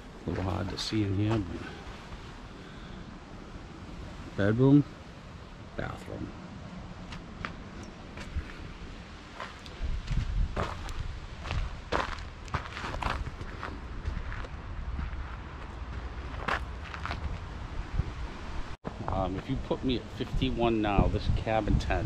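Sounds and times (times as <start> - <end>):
footsteps on dirt: 7.1 - 8.6, 9.3 - 17.5.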